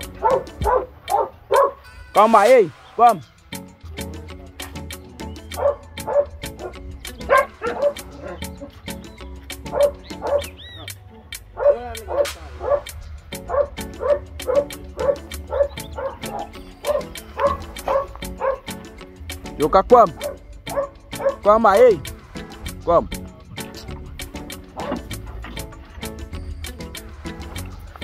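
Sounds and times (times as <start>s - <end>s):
puppies yipping and barking: 0.0s - 2.0s, 4.7s - 21.5s, 24.2s - 28.0s
background music with ticking beat: 0.0s - 28.0s.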